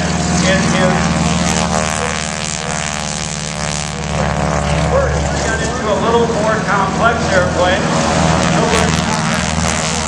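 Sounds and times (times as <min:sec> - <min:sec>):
propeller plane engine running: 0:00.0 - 0:10.0.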